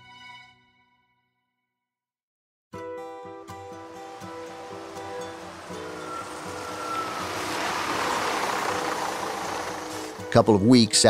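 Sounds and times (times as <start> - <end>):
background music with held notes: 2.8 - 11.0
vehicle passing: 3.6 - 10.4.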